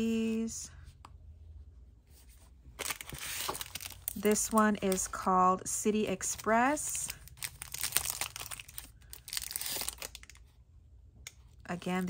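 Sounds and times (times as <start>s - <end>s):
paper handling: 2.3s - 5.1s
plastic wrapper crinkling: 2.8s - 5.2s, 6.2s - 10.5s.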